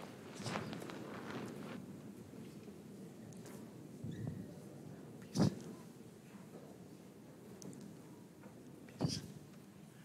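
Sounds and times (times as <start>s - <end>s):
soft footsteps: 0.0s - 1.8s.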